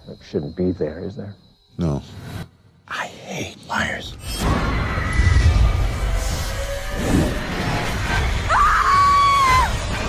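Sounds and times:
low droning horror score: 3.5s - 10.0s
girl screaming: 8.5s - 9.8s.

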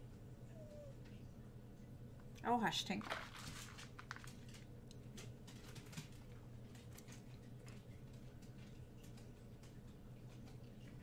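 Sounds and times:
steady low hum: 0.0s - 11.0s
faint clicks and rustles: 3.0s - 11.0s.

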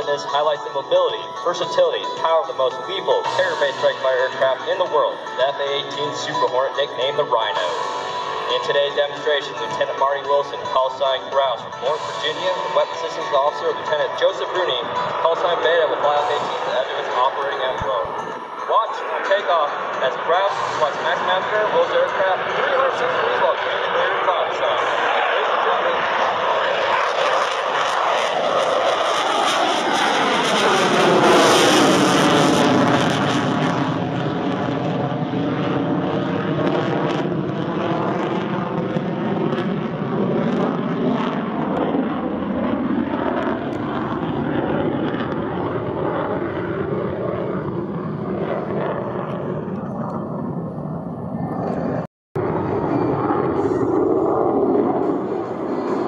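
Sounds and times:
jet engines roaring on takeoff: 0.0s - 56.0s.

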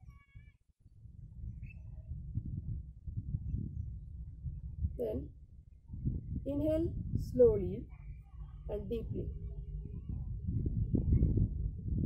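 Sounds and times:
low rumbling noise: 0.9s - 12.0s.

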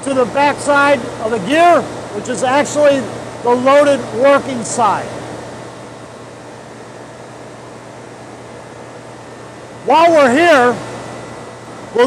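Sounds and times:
industrial machinery humming: 0.0s - 12.0s.

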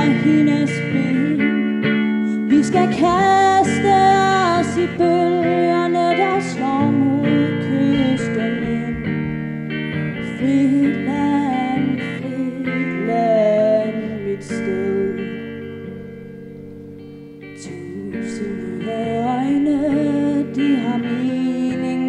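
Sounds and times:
woman singing: 0.0s - 16.0s, 17.5s - 22.0s
guitar accompaniment: 0.0s - 22.0s.

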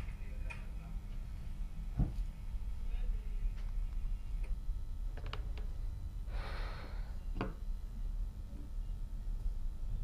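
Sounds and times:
low office hum: 0.0s - 10.0s.

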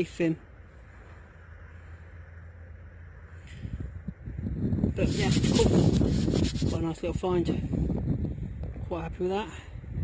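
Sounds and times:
wind rumble on microphone: 3.2s - 10.0s.

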